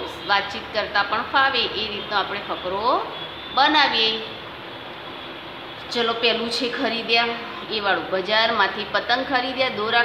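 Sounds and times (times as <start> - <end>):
woman speaking: 0.0 - 4.4, 5.8 - 10.0
steady background noise: 0.0 - 10.0.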